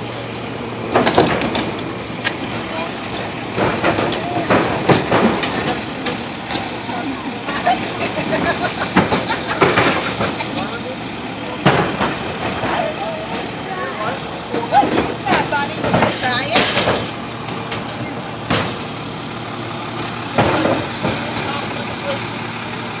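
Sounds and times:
garbage truck engine running: 0.0 - 23.0
people talking and laughing: 2.2 - 23.0.

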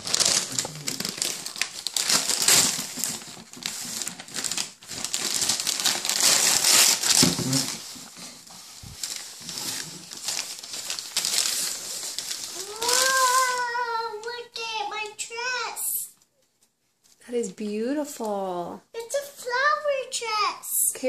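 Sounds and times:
tissue paper crinkling: 0.0 - 17.3.

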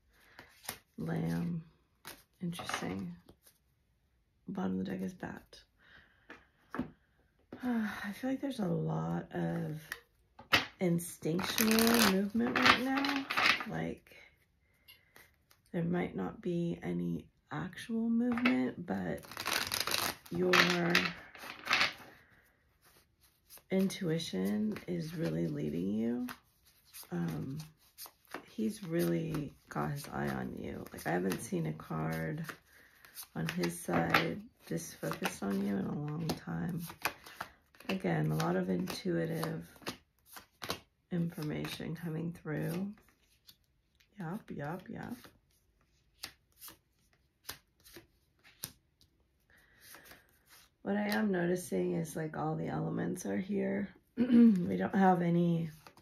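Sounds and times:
cards being shuffled: 0.2 - 3.6, 9.6 - 13.7, 19.2 - 22.2, 26.2 - 44.1, 44.7 - 49.1, 49.7 - 51.2, 55.7 - 56.0
cards sliding rustle: 11.4 - 13.6, 19.2 - 23.7, 45.1 - 48.8, 49.6 - 50.8.

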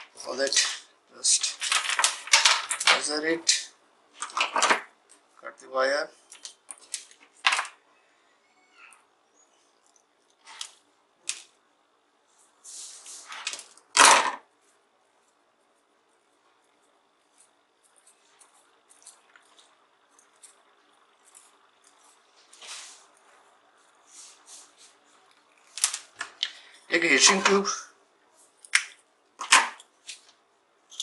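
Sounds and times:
rustles of handling wires: 0.0 - 5.5, 6.1 - 7.9, 8.8 - 11.6, 12.2 - 31.0.

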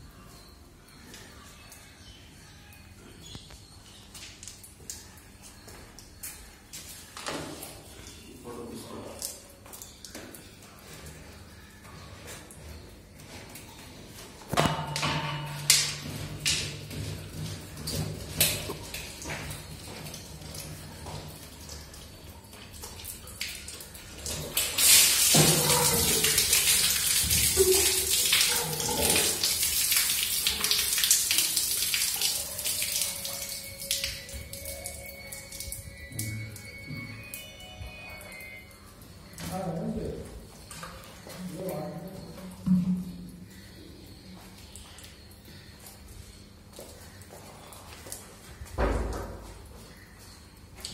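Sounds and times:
water pouring and splashing: 12.0 - 50.9.

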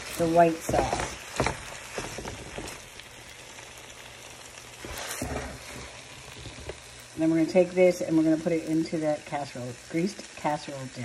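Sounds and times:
faint sauce sizzle: 0.0 - 11.0
spatula scraping in sauce: 4.8 - 6.8.

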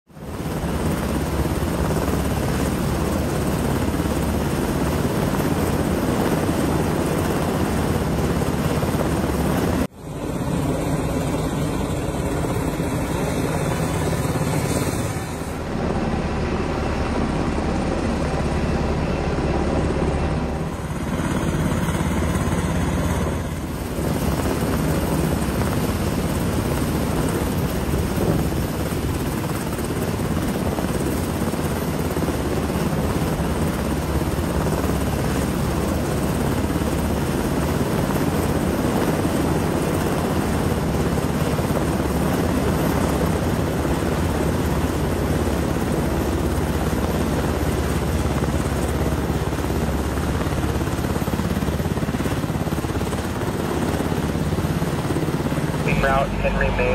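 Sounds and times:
helicopter hovering: 0.1 - 56.9.

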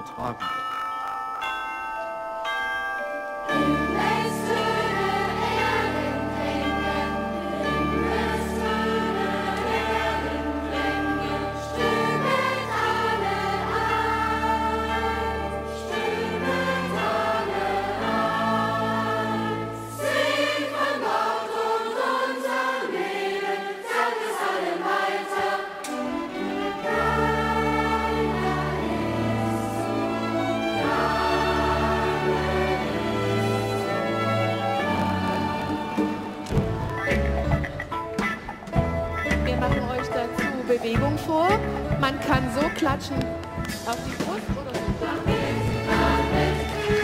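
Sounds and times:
orchestra and band accompaniment: 3.5 - 20.9, 25.8 - 47.0
children's choir singing: 3.5 - 36.8, 43.8 - 47.0.

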